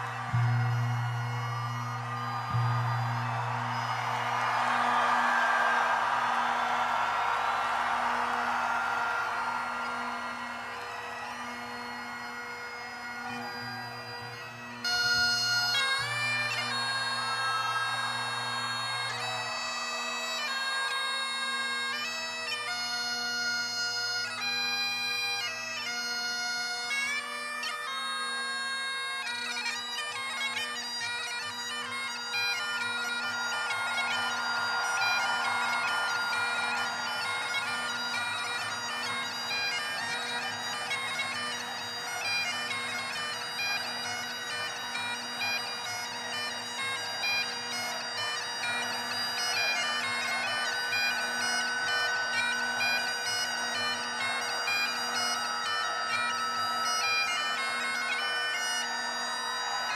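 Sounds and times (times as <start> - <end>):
bagpipe chanter melody: 0.0 - 59.9
bagpipe drones: 0.0 - 59.9.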